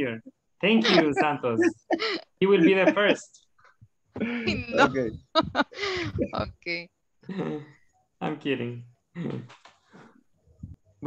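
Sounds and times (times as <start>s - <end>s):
person laughing softly: 0.7s - 3.1s, 4.2s - 6.5s.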